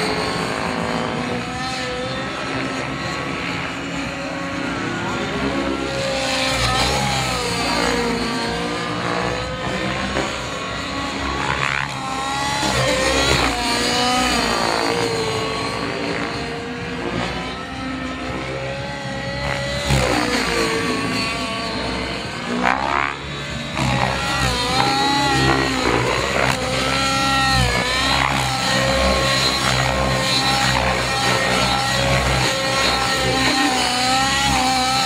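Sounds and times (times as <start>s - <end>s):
model helicopter rotor whine: 0.0s - 35.0s.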